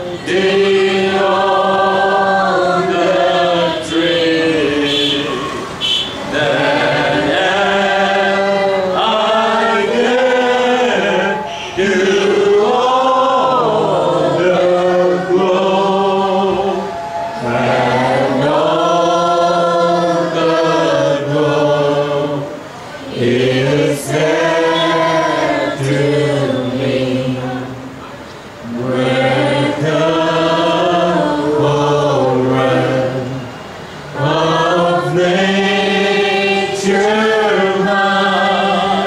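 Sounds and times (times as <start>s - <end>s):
group singing worship song: 0.0s - 28.0s, 28.6s - 39.0s.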